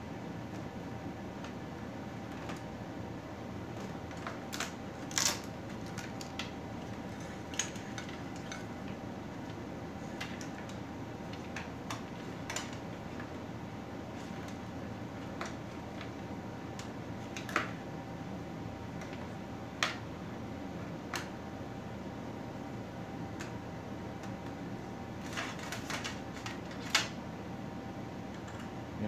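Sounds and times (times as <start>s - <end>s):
steady low hum: 0.0s - 29.0s.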